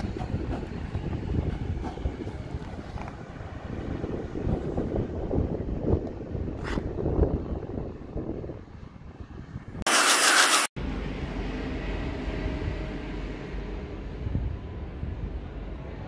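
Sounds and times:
train approaching rumble: 0.0s - 5.8s, 10.8s - 16.0s
wind noise: 0.0s - 9.9s, 14.0s - 16.0s.

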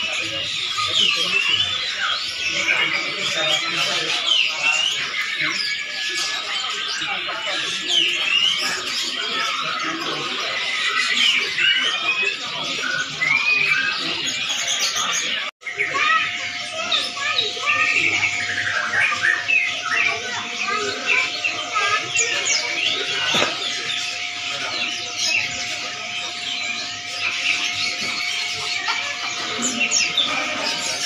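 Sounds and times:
caged birds chirping: 0.0s - 31.0s
people talking: 0.0s - 31.0s.

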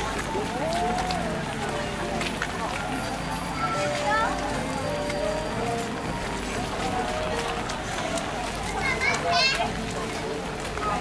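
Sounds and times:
music with held notes: 0.0s - 11.0s
people's voices: 0.0s - 11.0s
rain on umbrellas: 0.0s - 11.0s.

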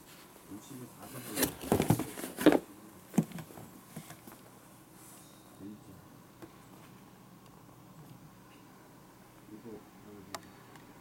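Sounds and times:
knocks and rustles of handling: 1.0s - 4.4s.

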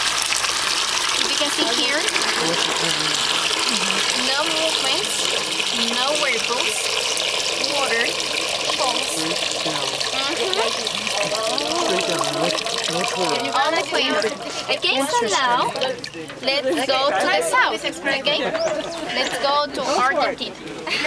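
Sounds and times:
water draining from sink: 0.0s - 16.9s.

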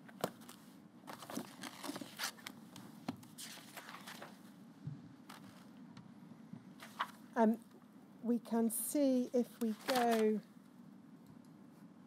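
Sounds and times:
paper sheets rustling: 0.0s - 2.5s, 3.2s - 4.4s, 5.3s - 5.7s, 6.8s - 7.2s, 9.6s - 10.4s.

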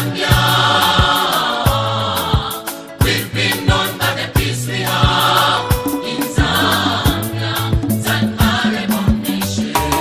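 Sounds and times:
bass line: 0.0s - 10.0s
gospel singing voices: 0.0s - 10.0s
drum beat: 0.4s - 10.0s.

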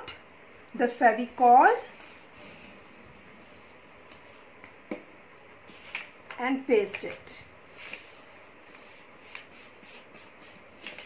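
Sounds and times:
paper rubbing and rustling: 5.7s - 6.2s, 6.9s - 11.0s.

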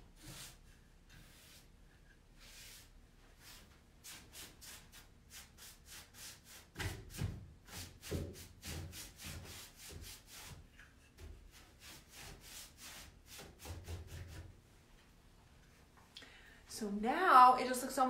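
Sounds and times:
paintbrush scrubbing on wood: 0.1s - 1.8s, 2.4s - 10.7s, 11.4s - 14.5s.

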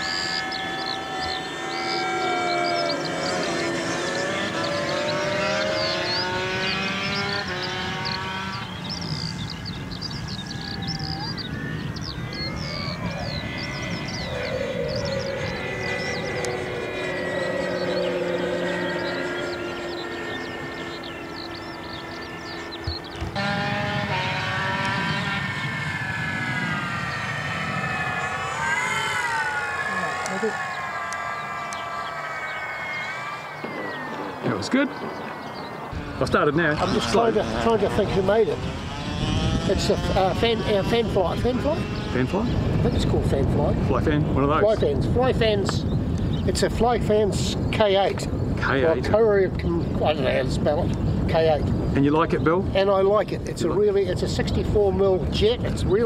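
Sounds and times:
model propeller plane flying overhead: 0.0s - 56.0s.

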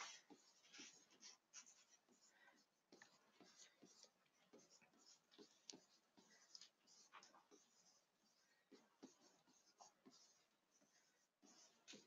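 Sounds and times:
pen scratching on paper: 0.0s - 12.0s.

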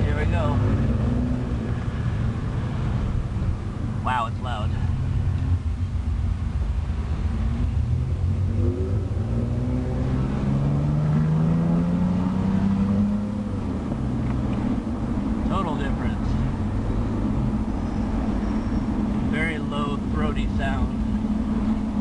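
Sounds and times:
car engine and exhaust: 0.0s - 22.0s.

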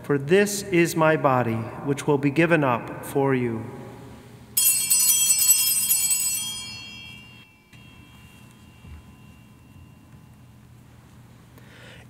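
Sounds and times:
altar bells ringing: 4.6s - 11.2s.

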